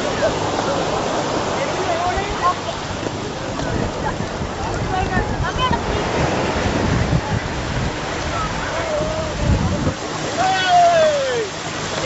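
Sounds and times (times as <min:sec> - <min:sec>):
surf washing on shore: 0:00.0 - 0:12.0
wind buffeting microphone: 0:00.0 - 0:12.0.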